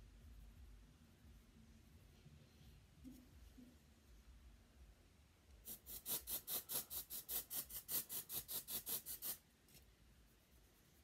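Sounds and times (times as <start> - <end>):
fingers rubbing hair: 5.7 - 11.0.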